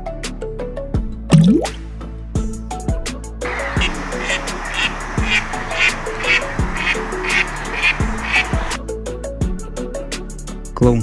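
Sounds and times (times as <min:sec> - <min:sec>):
background music with steady beat: 0:00.1 - 0:11.0
duck calling: 0:03.7 - 0:08.8.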